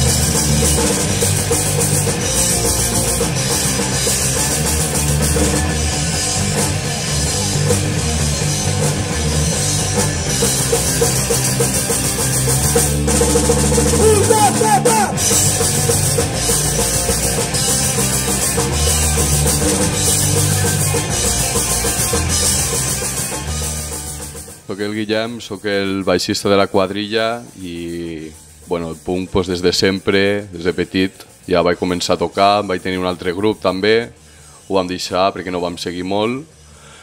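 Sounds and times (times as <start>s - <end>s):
distorted electric guitars: 0.0s - 33.5s
drum kit rock beat: 0.0s - 34.2s
bass guitar: 0.0s - 34.3s.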